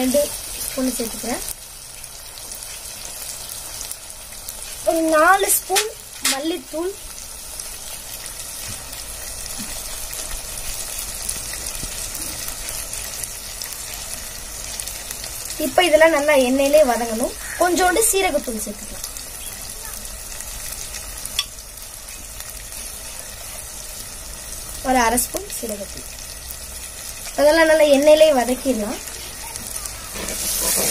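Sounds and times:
oil sizzling in a pot: 0.0 - 30.9.

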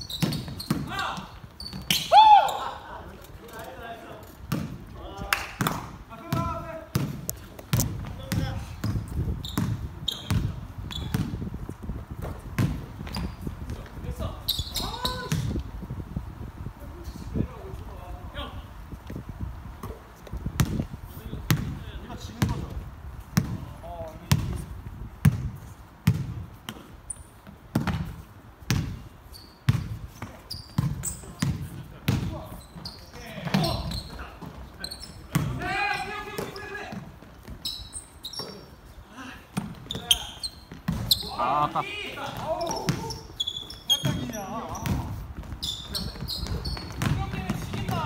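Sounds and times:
basketball bouncing on wooden floor: 4.5 - 4.7, 5.6 - 11.4, 25.2 - 26.8, 27.7 - 28.1, 29.7 - 32.4, 44.0 - 48.0
player shouting: 41.2 - 42.2.

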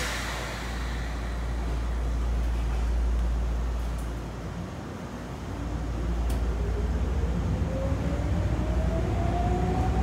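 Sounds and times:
compressed air hiss: 0.0 - 2.9
train car low hum: 0.0 - 10.0.

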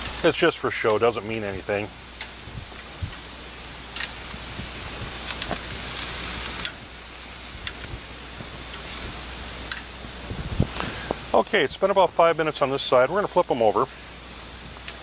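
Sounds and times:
meat sizzling on a grill: 0.0 - 15.0.

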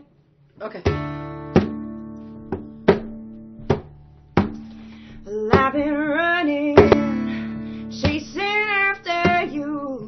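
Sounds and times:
guitar chords ringing: 0.8 - 10.0.

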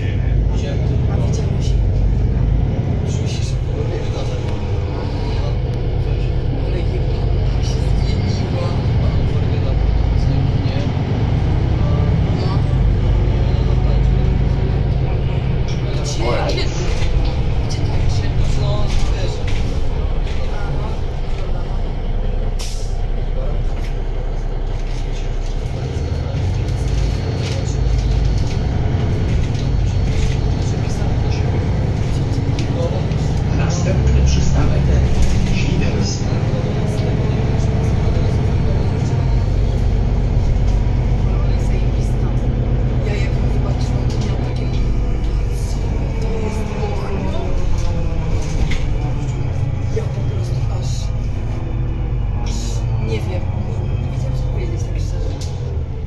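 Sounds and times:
bus diesel engine drone: 0.0 - 56.0
interior rattles and clicks: 23.6 - 56.0.

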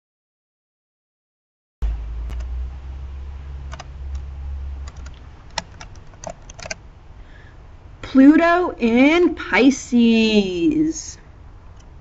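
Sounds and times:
low hum: 1.8 - 9.1
sharp irregular clicks: 2.3 - 2.5, 3.7 - 6.8, 11.7 - 12.0.

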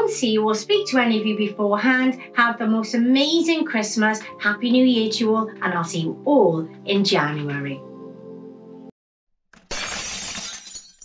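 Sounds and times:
glass shattering: 9.6 - 11.0.

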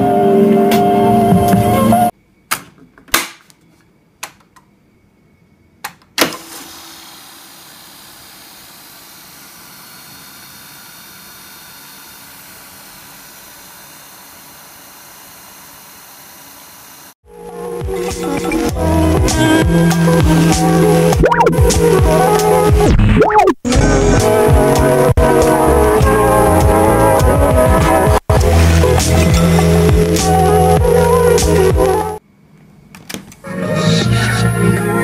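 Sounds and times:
tape duplicator humming and hissing: 6.2 - 17.2
intro music: 17.3 - 32.2.

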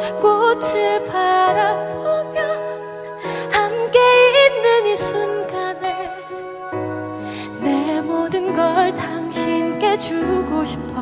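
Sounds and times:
soft instrumental accompaniment: 0.0 - 11.0
woman singing a ballad: 0.0 - 11.0.

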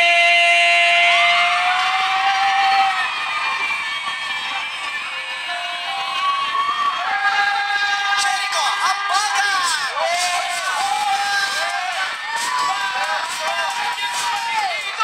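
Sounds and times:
audience cheering and shouting: 0.0 - 15.0
backing music: 2.4 - 15.0.

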